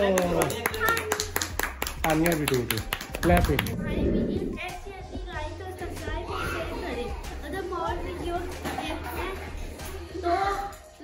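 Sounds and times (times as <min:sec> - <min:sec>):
children clapping hands: 0:00.0 - 0:03.8.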